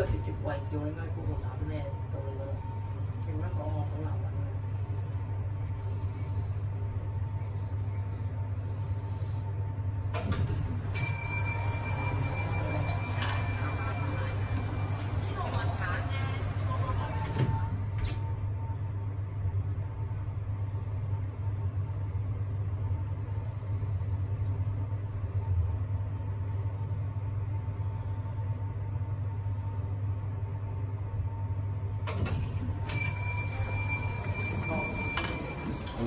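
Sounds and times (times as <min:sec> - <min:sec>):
lift hum with whine: 0:00.0 - 0:36.0
lift chime: 0:10.2 - 0:15.9, 0:32.1 - 0:36.0
lift doors opening: 0:10.2 - 0:18.2, 0:32.0 - 0:36.0.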